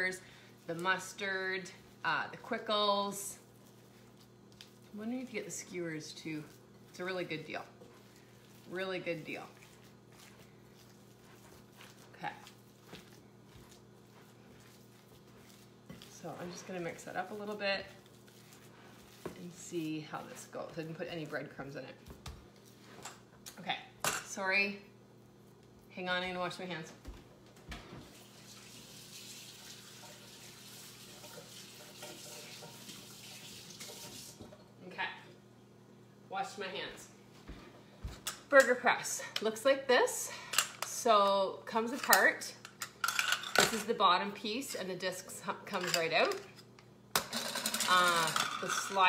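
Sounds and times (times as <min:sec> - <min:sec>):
hands squishing raw meat: 0:03.5 - 0:05.3, 0:07.7 - 0:20.8
tap water running into sink: 0:28.0 - 0:34.6.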